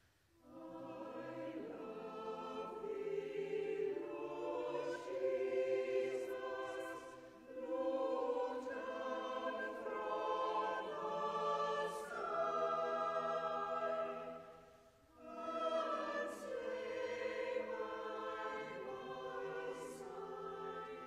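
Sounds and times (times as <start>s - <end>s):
choir singing a carol: 0.0s - 21.0s.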